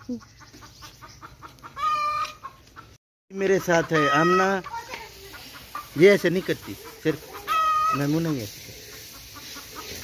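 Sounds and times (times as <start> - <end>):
hen clucking: 0.0 - 10.0
hen cackling call: 1.6 - 2.6, 3.8 - 4.6, 6.7 - 8.1.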